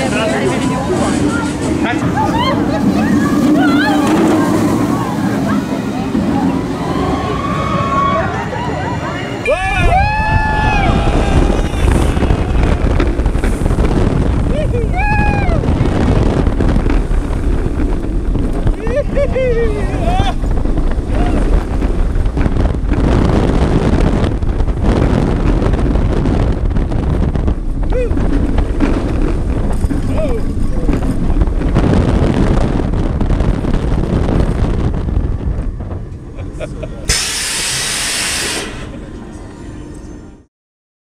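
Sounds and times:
roller coaster wind and track noise: 0.0 - 40.5
loud hiss: 37.1 - 39.0.

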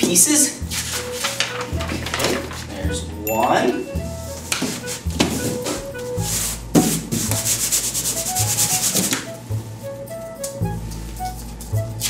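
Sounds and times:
hand rubbing paper on cardboard: 0.6 - 3.1, 4.0 - 12.0.

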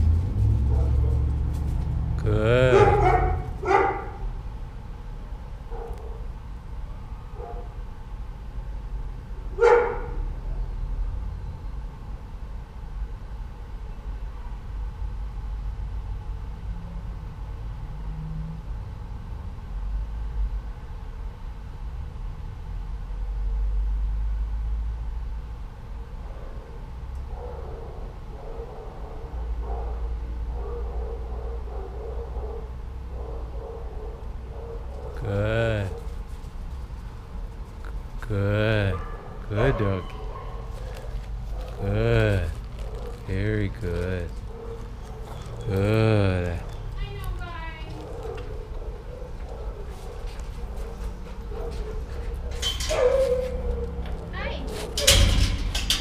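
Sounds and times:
steady low rumble: 0.0 - 5.7
dog barking: 0.6 - 1.3, 2.7 - 4.3, 5.7 - 6.2, 7.4 - 7.8, 9.5 - 10.2, 26.0 - 35.2, 38.9 - 41.8, 42.8 - 43.3, 44.4 - 45.7, 47.9 - 55.1.

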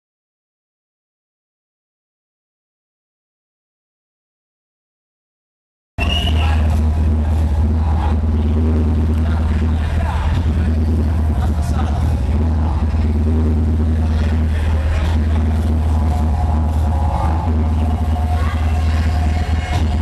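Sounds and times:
hardcore techno with heavy bass: 6.0 - 20.0
voices: 6.0 - 20.0.

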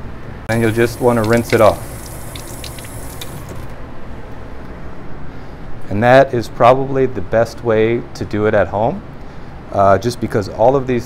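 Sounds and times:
low steady hum: 0.0 - 11.0
faucet water running: 0.5 - 3.7.

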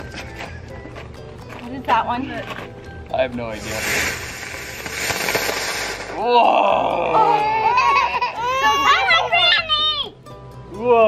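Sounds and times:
ground firework hissing: 3.5 - 6.9.

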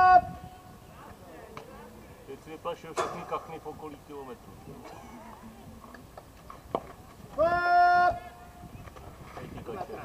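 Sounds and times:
faint talk: 0.0 - 6.1
person shouting: 7.4 - 8.3.

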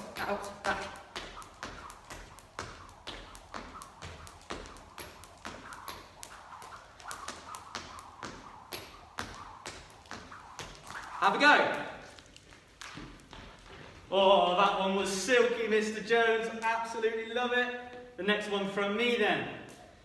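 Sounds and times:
skipping rope hitting floor: 0.0 - 14.1.

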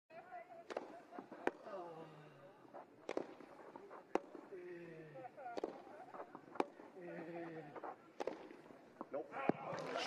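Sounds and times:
tennis racket hitting ball: 3.0 - 4.5, 5.5 - 6.9, 7.8 - 8.7.

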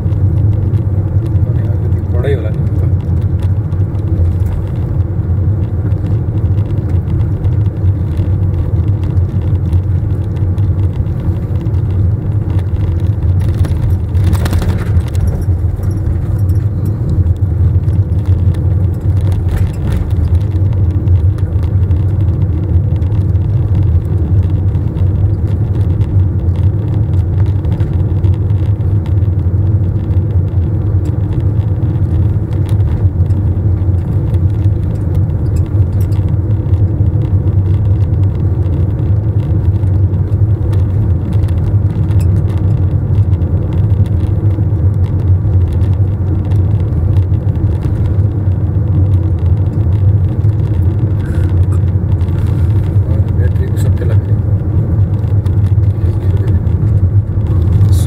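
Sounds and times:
car interior road rumble: 0.0 - 58.0.

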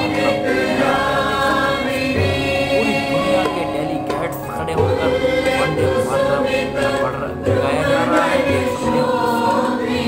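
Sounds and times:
women's choir singing: 0.0 - 3.8, 4.8 - 10.0.

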